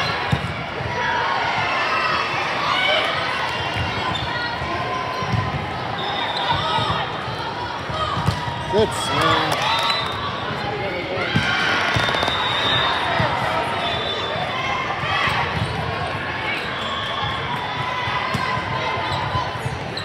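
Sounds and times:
people calling out and talking: 8.6s - 11.4s.

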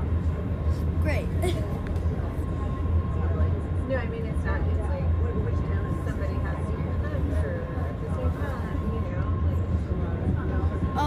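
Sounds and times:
subway car rumble: 0.0s - 11.0s.

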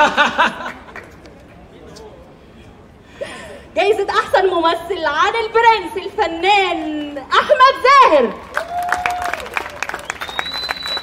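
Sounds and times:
audience applauding: 8.5s - 11.0s.

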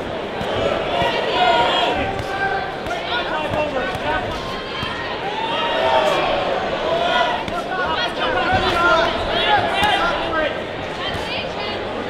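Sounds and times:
voices calling out in echoing hall: 0.0s - 12.0s.

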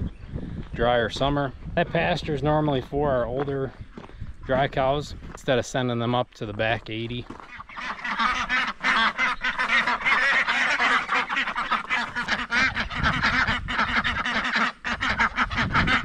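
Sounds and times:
ducks quacking: 6.7s - 16.0s.

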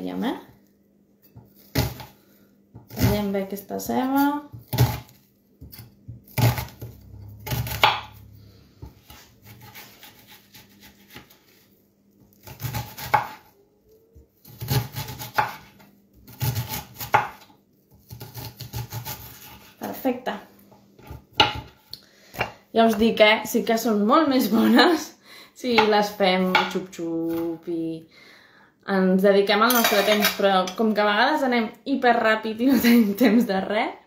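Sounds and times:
knife chopping on cutting board: 4.5s - 8.2s, 8.8s - 11.4s, 12.4s - 13.4s, 14.5s - 19.7s, 21.0s - 22.5s.

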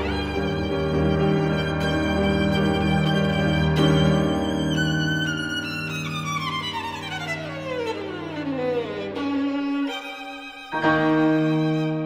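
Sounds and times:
piano accompaniment: 0.0s - 12.0s
solo violin: 0.0s - 12.0s.

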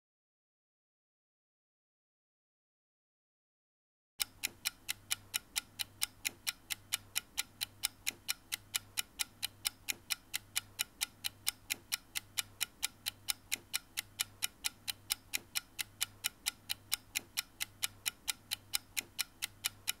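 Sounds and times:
rapid even ticking: 4.2s - 20.0s.

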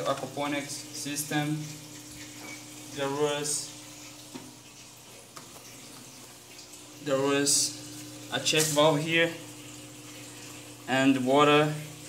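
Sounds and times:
water flowing through pipes: 0.0s - 12.0s.

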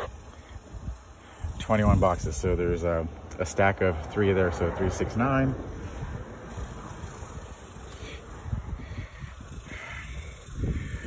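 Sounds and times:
wind rumble: 0.0s - 11.0s.

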